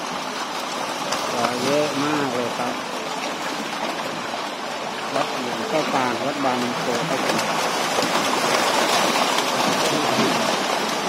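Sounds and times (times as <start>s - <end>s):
fish splashing in water: 0.0s - 11.0s.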